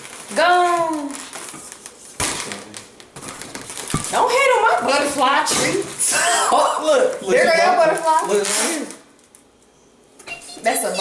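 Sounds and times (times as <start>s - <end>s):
balloons knocked and rustling: 0.8s - 4.3s.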